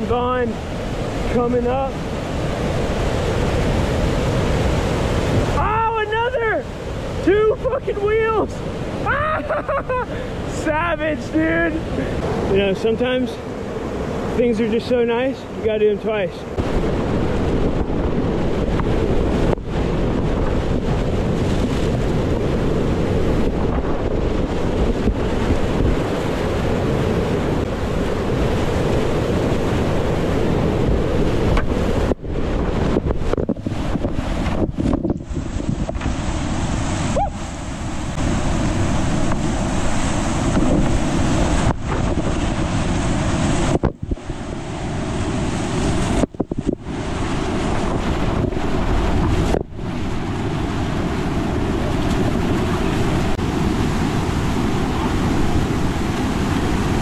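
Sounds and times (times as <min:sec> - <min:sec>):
whitewater rapids rushing: 0:00.0 - 0:17.2
wind buffeting microphone: 0:00.0 - 0:57.0.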